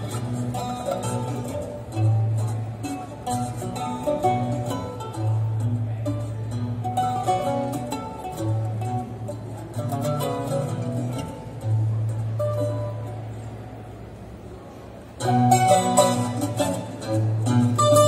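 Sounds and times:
held low plucked string notes: 0.0 - 14.4, 15.0 - 18.0
picked higher melody: 15.2 - 18.0.

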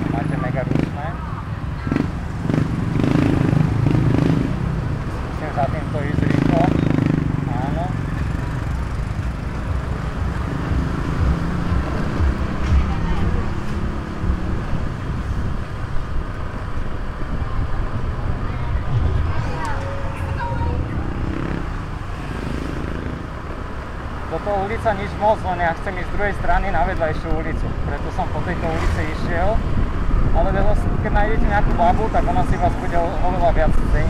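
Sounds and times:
scooter engine and road rumble: 0.0 - 34.0
street voices: 0.0 - 34.0.

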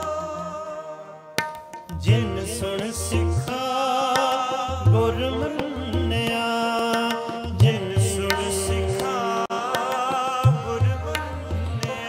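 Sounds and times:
harmonium chords: 0.0 - 12.0
person singing: 0.0 - 12.0
tabla strokes: 1.4 - 12.0.

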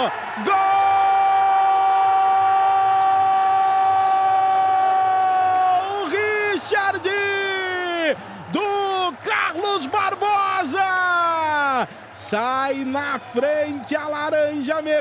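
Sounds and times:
excited shouting: 0.0 - 14.6
commentator shouting goal: 3.7 - 15.0.

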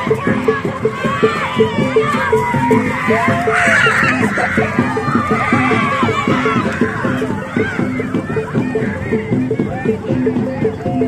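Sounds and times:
children shrieking and yelling: 0.0 - 10.0
gamelan music: 0.0 - 11.0.

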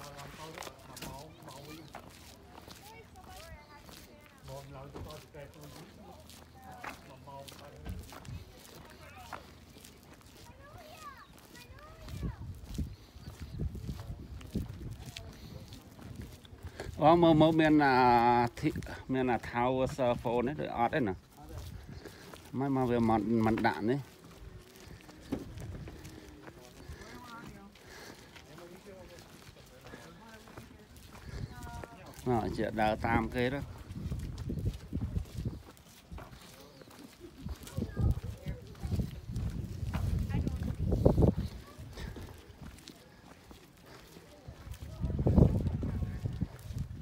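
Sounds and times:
footsteps on pavement: 0.0 - 47.0.

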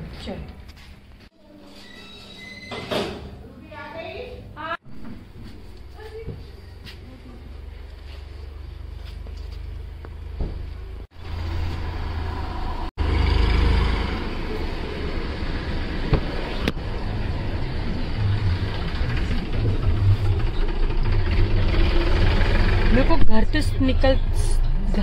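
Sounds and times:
car engine and road noise: 4.8 - 25.0.

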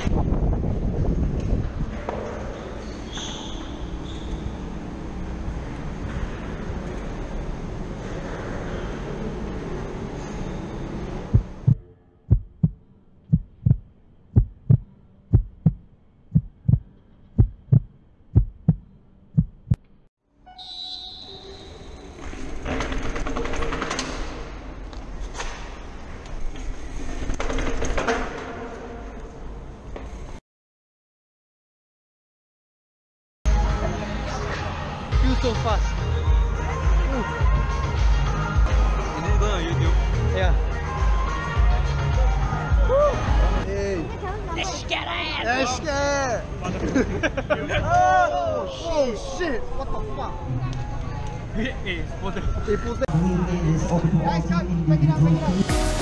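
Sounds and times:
steady background noise: 0.0 - 20.1
heartbeat thuds: 11.3 - 19.8.

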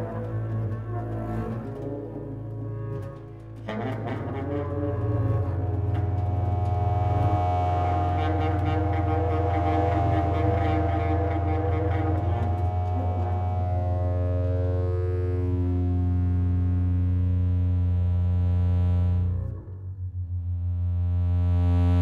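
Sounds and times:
saxophone: 0.0 - 19.9
theremin: 0.0 - 19.9
bowed double bass: 0.0 - 22.0
synthesizer drone: 0.0 - 22.0.

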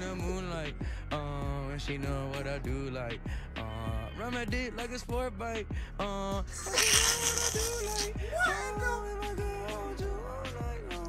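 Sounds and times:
rapping over a hip hop beat: 0.0 - 11.0.

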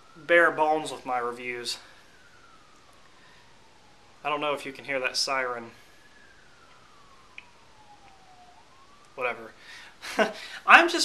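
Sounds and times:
faint siren wailing: 0.0 - 11.0.

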